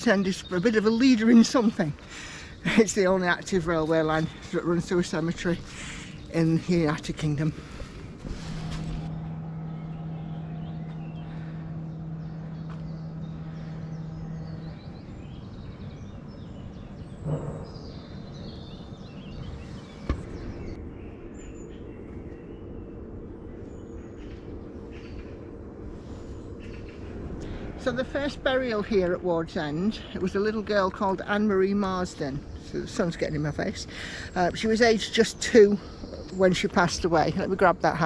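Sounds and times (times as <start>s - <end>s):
birds chirping: 0.0s - 38.0s
steady low hum: 0.0s - 38.0s.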